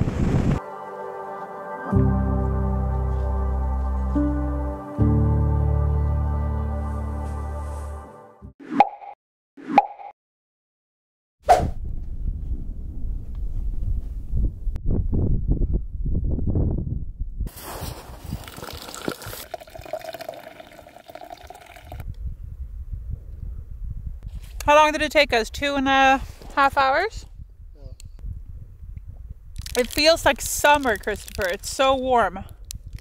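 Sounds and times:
wind rumble on microphone: 0.0s - 0.6s, 11.5s - 19.4s, 21.8s - 33.0s
background music: 0.6s - 8.5s
hot drink pouring into tumbler: 17.5s - 22.0s.

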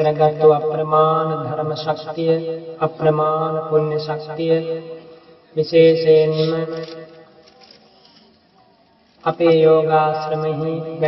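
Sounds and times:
man chanting: 0.0s - 5.0s, 5.6s - 6.8s, 9.3s - 11.0s.

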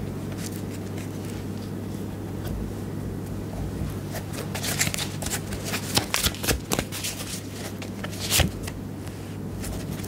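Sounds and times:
cards being shuffled: 4.1s - 10.0s.

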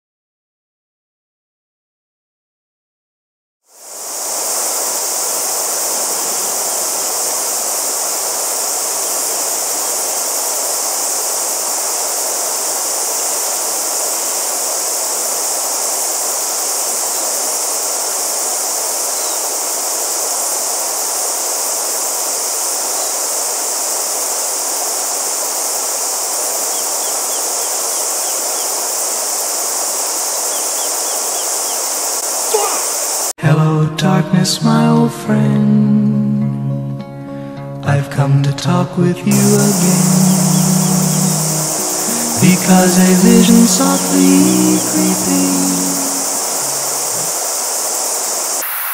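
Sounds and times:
steady high-pitched hiss: 3.7s - 33.4s, 39.0s - 48.9s
river running over stones: 3.8s - 33.3s, 39.4s - 48.9s.

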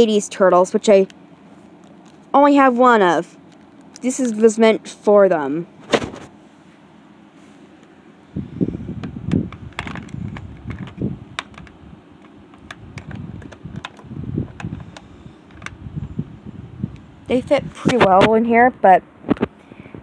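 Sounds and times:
handling noise: 8.9s - 15.9s
plastic toys clicking and knocking: 9.8s - 14.8s.

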